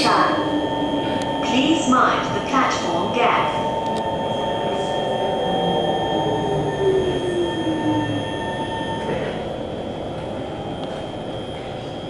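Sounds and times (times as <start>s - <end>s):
train traction equipment whining: 0.0s - 12.0s
train wheels rumbling on rails: 7.7s - 12.0s.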